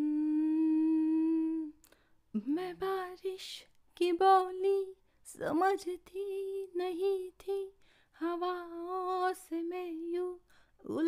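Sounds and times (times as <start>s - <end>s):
woman humming a long note: 0.0s - 1.7s.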